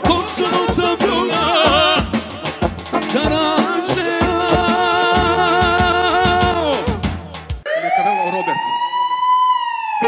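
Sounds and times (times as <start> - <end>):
electronic keyboard note bending: 1.8 - 5.8.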